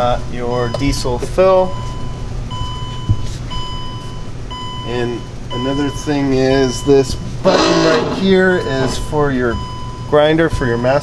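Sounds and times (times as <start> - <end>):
vehicle warning chime beeping: 1.7 - 11.0.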